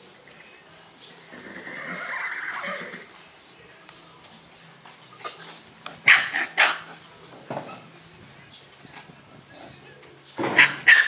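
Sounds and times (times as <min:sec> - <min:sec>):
horse whinnying: 0:01.4 - 0:03.1.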